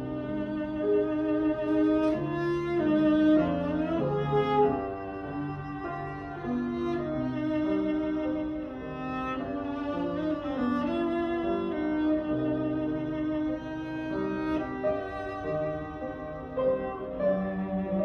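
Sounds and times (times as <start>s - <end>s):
bowed cello melody: 0.0s - 18.0s.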